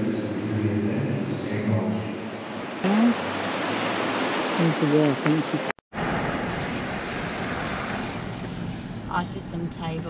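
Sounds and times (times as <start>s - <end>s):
road and wind noise in car: 2.4s - 10.0s.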